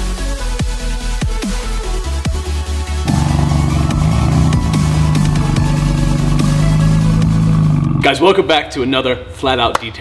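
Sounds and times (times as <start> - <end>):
electronic music: 3.0 - 7.8
car engine exhaust note: 3.0 - 8.2.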